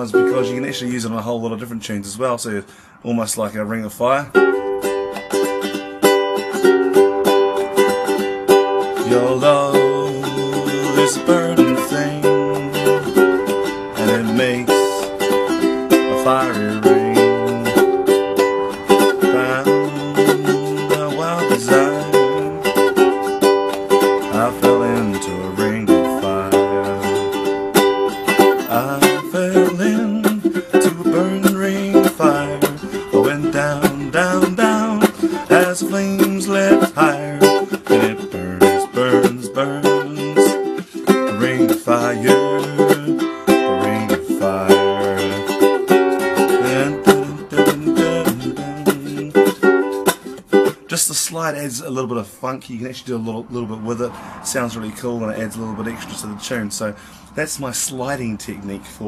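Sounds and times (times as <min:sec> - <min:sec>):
ukulele strummed rhythmically: 0:00.0 - 0:02.4, 0:04.2 - 0:59.0
percussive slap strokes on ukulele: 0:23.2 - 0:24.2.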